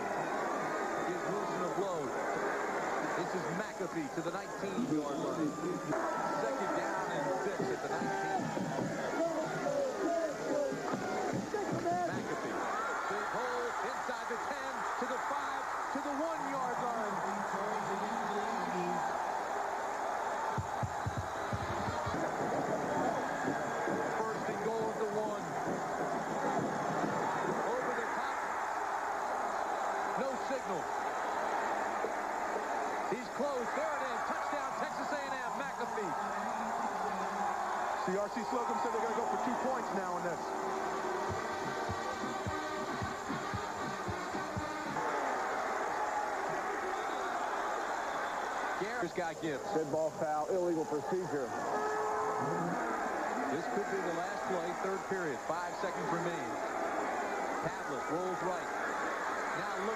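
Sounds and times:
stadium crowd cheering: 0.0 - 59.9.

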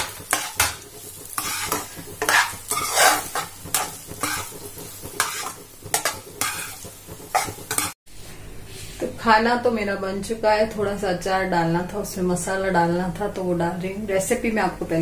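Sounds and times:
rice sizzling in oil: 0.0 - 8.0
spatula scraping a pan: 0.0 - 8.0.

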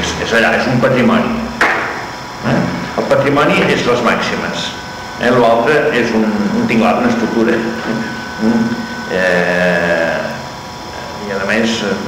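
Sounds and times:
faint recording hum: 0.0 - 12.0
man drawing out vowel: 8.4 - 10.4.

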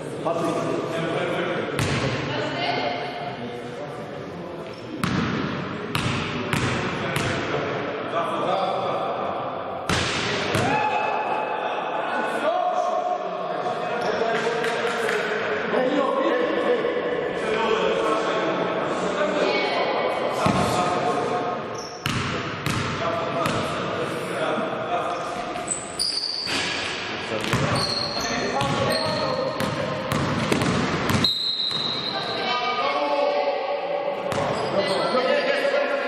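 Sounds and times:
basketball bouncing on gym floor: 5.0 - 7.4, 22.0 - 23.7, 27.4 - 28.0, 28.6 - 31.9.

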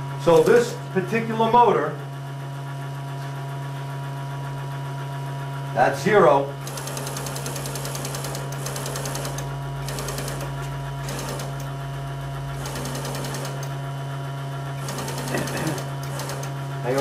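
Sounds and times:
electric motor humming: 0.0 - 17.0.

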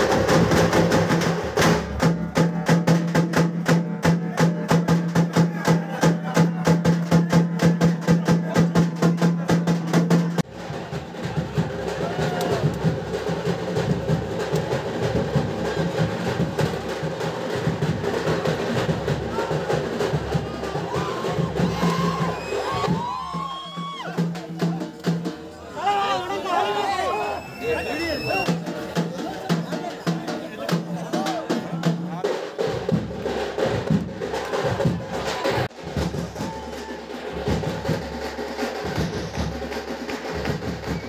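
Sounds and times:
fast drumming: 0.0 - 26.0, 27.9 - 41.0
crowd shouting and cheering: 1.6 - 13.1, 18.4 - 32.3, 34.0 - 38.1.

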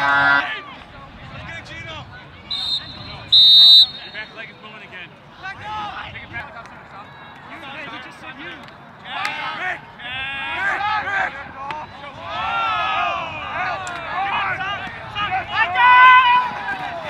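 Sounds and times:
players yelling: 2.5 - 4.5, 9.0 - 17.0.

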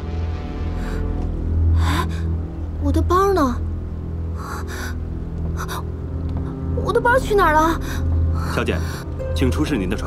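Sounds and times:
background music low drone: 0.0 - 10.0.

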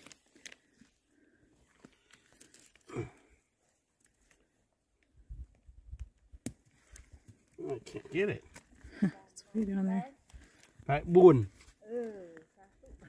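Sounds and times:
twigs snapping: 0.0 - 0.7, 1.8 - 2.9, 5.9 - 7.7, 8.4 - 9.0, 10.2 - 10.8.

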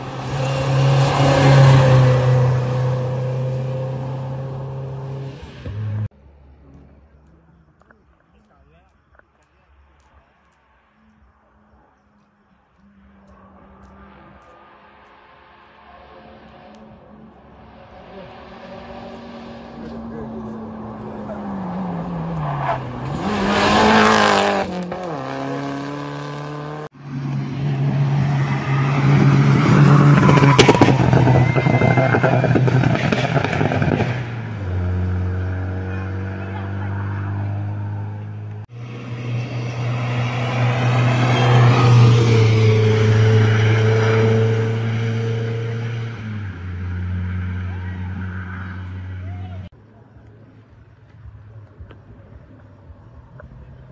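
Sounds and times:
rally car engines revving: 0.0 - 7.0, 13.0 - 49.7
car passing with tyre noise: 0.0 - 7.3, 12.4 - 49.7.

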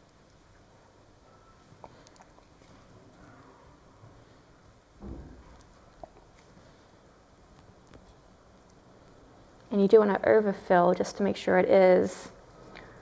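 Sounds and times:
soft low thump: 5.0 - 5.6.

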